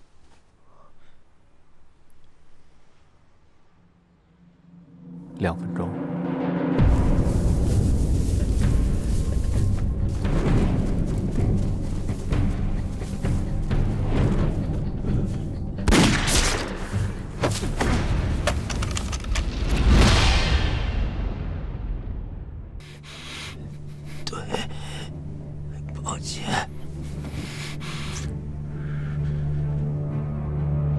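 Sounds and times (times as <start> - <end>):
dramatic film score: 3.4 - 30.9
gunfire: 15.9 - 16.9
heavy booms: 19.4 - 22.8.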